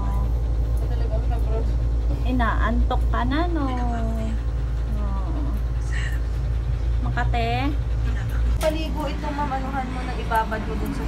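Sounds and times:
low machinery rumble: 0.0s - 11.0s.

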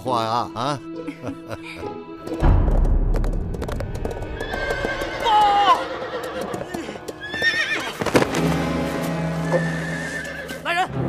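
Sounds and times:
dramatic score music: 0.0s - 11.0s
horse hooves galloping: 2.7s - 10.6s
horse whinnying: 4.4s - 8.3s, 9.4s - 10.6s.

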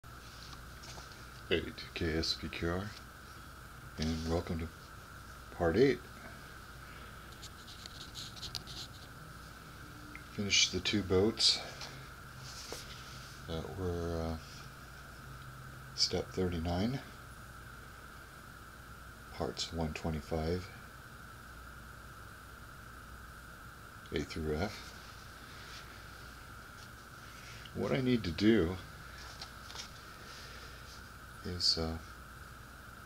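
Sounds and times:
faint high-pitched hum: 0.0s - 33.0s
steady background hiss: 0.0s - 33.0s
faint scratches and ticks: 4.0s - 5.0s, 6.9s - 9.2s.

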